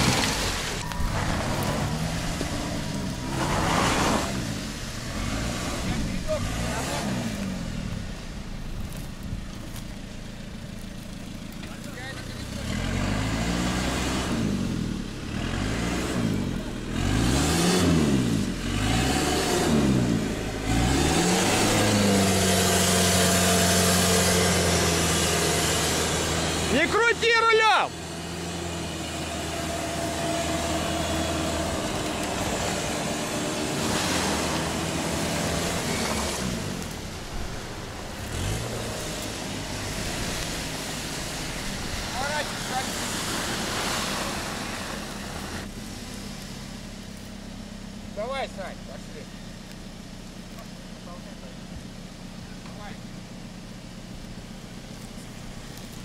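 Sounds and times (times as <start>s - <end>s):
engine revving: 0.0s - 8.7s, 11.6s - 46.9s.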